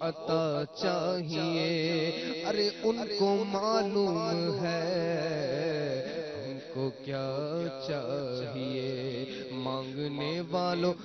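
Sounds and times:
man chanting into microphone: 0.0 - 11.0.

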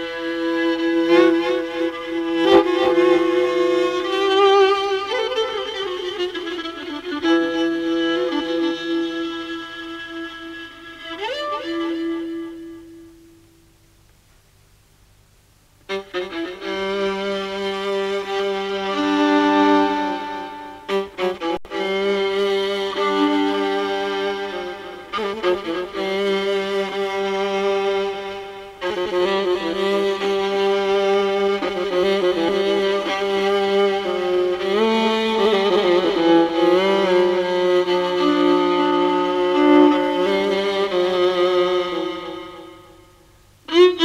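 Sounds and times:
violin playing held notes: 0.0 - 13.4, 15.9 - 44.0.

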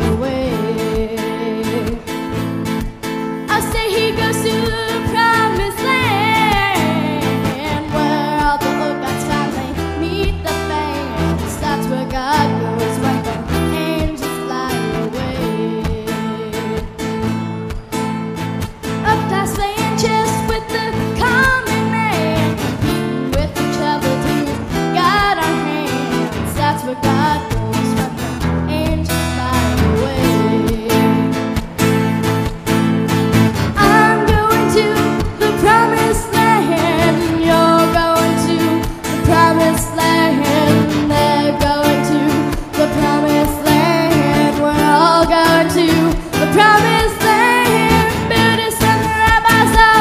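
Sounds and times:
girl singing into microphone: 0.0 - 18.0, 18.7 - 32.5, 33.6 - 50.0
strummed acoustic guitar: 0.0 - 50.0.

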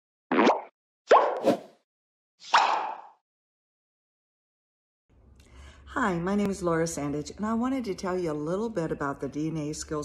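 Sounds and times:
cartoon pop bloops: 0.3 - 1.4.

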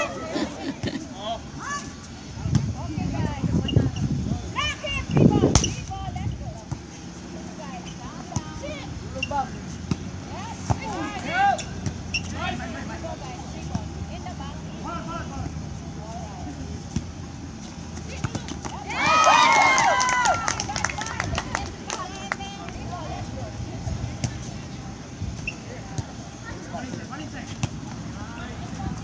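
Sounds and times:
players shouting: 18.8 - 21.2.

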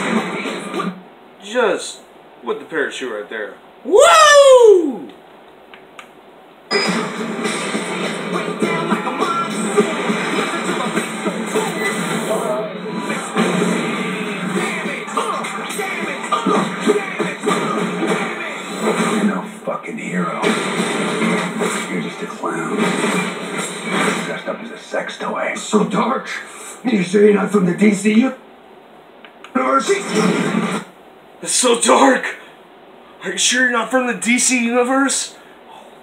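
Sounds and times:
movie trailer music and effects: 6.7 - 19.6, 20.3 - 24.8.

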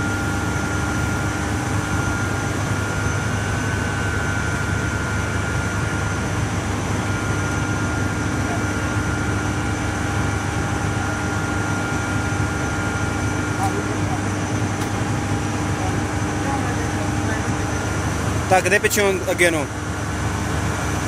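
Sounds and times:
powerhouse machinery drone: 0.0 - 21.0.

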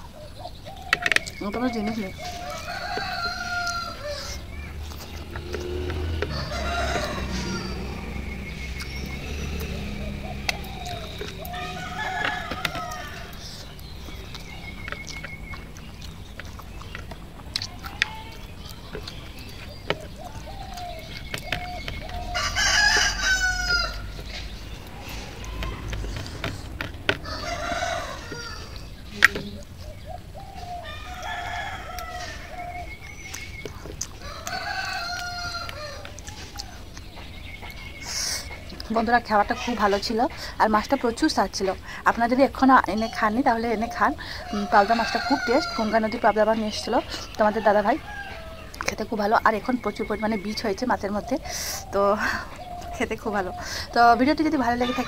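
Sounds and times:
rooster crowing: 1.8 - 4.7, 5.3 - 13.7, 20.1 - 29.0, 30.3 - 33.3, 34.2 - 36.8, 44.3 - 46.1, 47.5 - 48.8, 54.8 - 55.0.

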